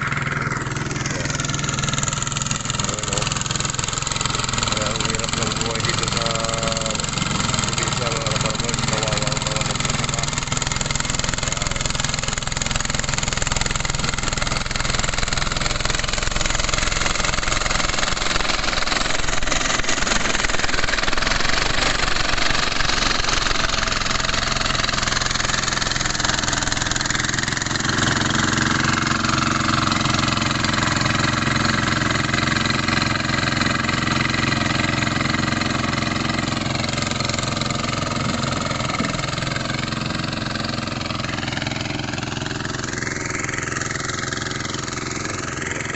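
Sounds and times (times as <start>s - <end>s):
hand tractor engine running: 0.0s - 45.9s.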